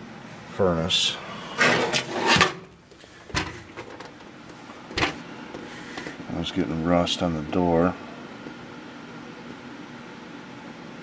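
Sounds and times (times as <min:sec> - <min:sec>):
fan humming and hissing: 0:00.0 - 0:11.0.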